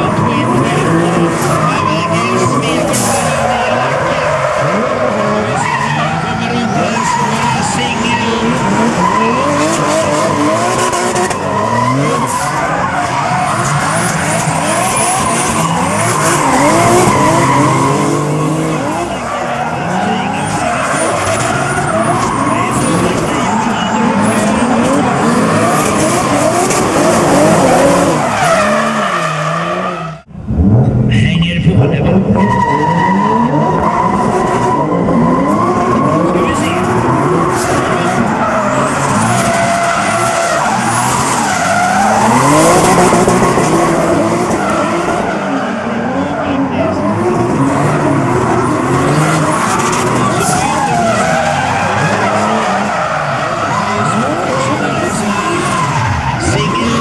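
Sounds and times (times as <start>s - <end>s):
tyres squealing and skidding: 0.0s - 30.3s, 31.2s - 57.0s
car engines revving: 0.0s - 57.0s.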